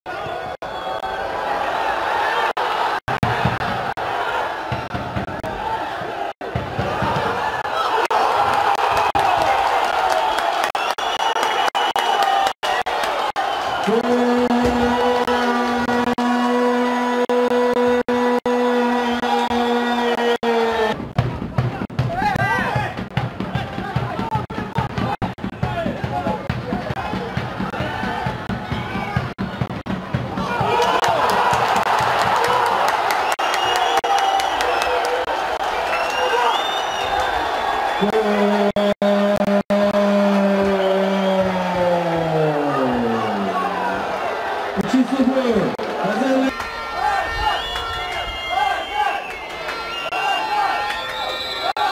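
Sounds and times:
long loud held cry: 0:46.5 - 0:51.9.

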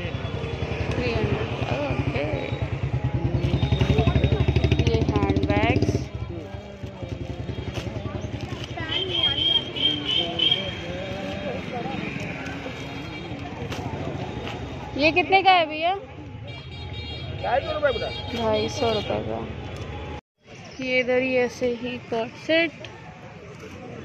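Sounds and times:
motorcycle engine running: 0:00.0 - 0:15.0
market voices: 0:00.0 - 0:24.0.

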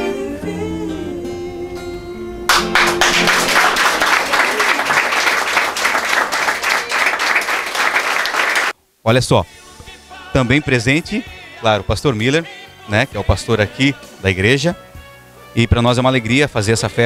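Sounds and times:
acoustic guitar song: 0:00.0 - 0:03.8
audience applauding: 0:02.5 - 0:08.8.

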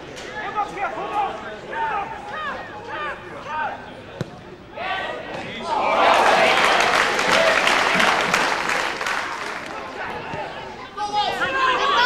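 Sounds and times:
shouts from players and spectators: 0:11.0 - 0:12.0.

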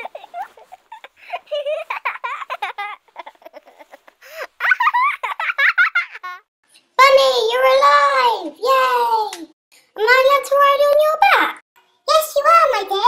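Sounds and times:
children giggling and laughing: 0:00.0 - 0:06.5.

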